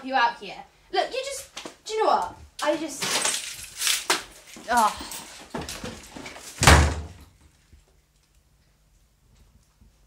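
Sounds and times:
door slamming shut: 0:06.6 - 0:07.3.

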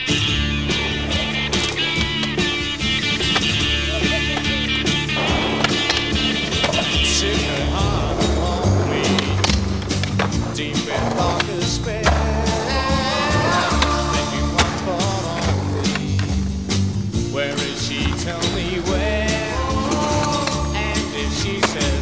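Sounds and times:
rock music: 0:00.0 - 0:22.0
skateboard clacks: 0:00.0 - 0:22.0
skateboard wheels rolling on concrete: 0:00.0 - 0:22.0.

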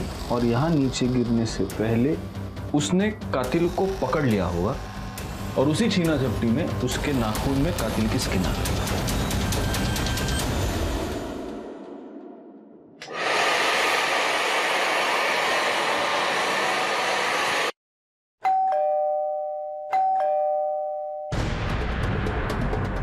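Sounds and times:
hair dryer running: 0:03.4 - 0:08.2, 0:13.0 - 0:17.8
two-tone doorbell ringing: 0:18.4 - 0:21.4.

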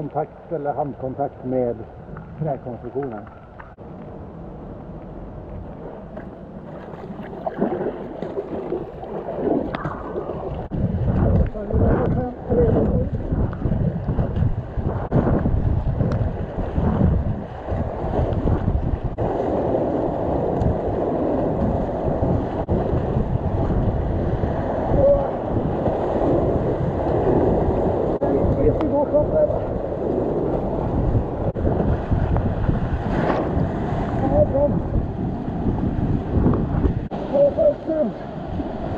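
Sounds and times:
wind buffeting microphone: 0:00.0 - 0:38.9
paddle strokes splashing: 0:06.1 - 0:11.4.

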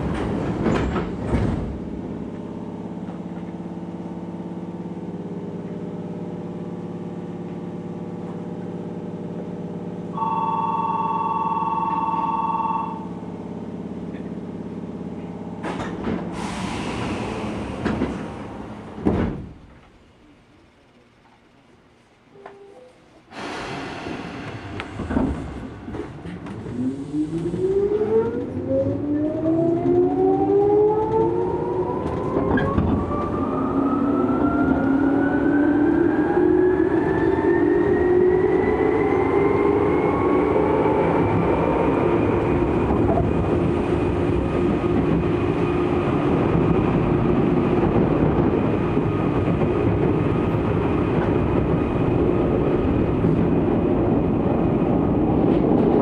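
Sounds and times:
train wheels rumbling: 0:00.0 - 0:10.1, 0:13.1 - 0:21.6, 0:23.3 - 0:56.0.

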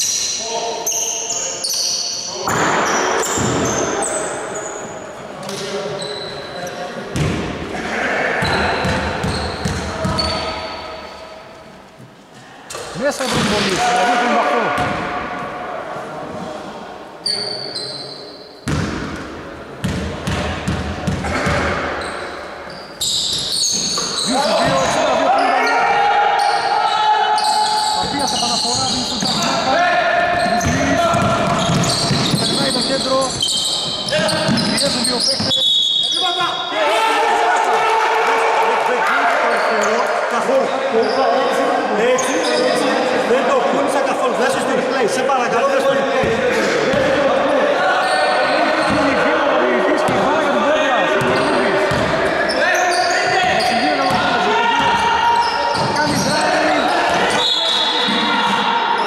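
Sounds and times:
players calling out: 0:00.3 - 0:11.3, 0:20.2 - 0:43.2, 0:45.9 - 0:59.0
basketball bouncing on wooden court: 0:07.1 - 0:07.5, 0:08.4 - 0:10.5, 0:14.8 - 0:15.1, 0:18.6 - 0:19.2, 0:19.8 - 0:21.9, 0:30.3 - 0:35.6, 0:51.2 - 0:52.2, 0:54.0 - 0:55.0.

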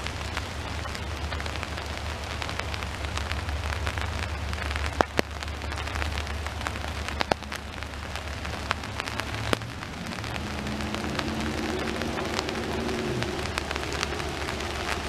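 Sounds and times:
low rumble: 0:00.0 - 0:15.0
rain drops ticking: 0:00.0 - 0:15.0.

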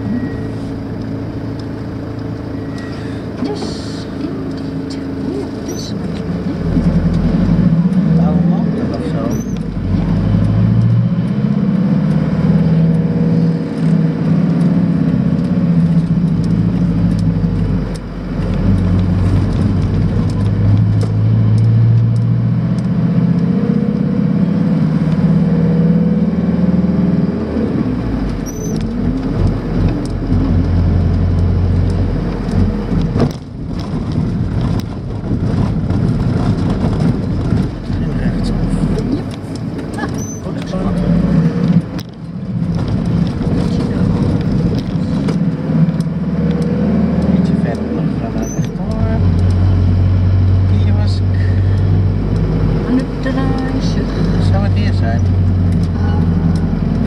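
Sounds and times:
van engine and road noise: 0:00.0 - 0:57.0.

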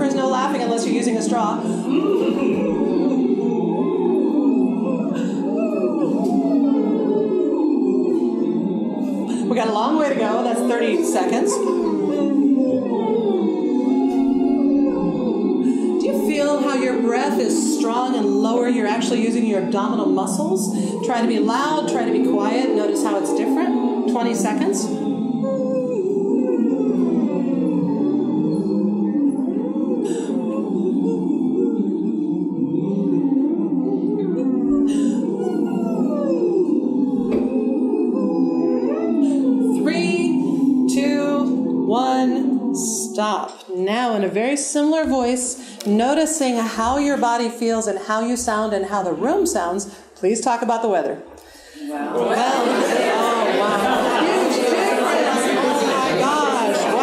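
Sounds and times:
people phonating through straws: 0:00.0 - 0:47.8.

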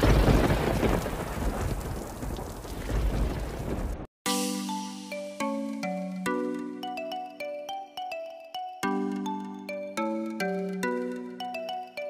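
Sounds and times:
low thunder: 0:00.0 - 0:04.1
rain: 0:00.0 - 0:04.1.

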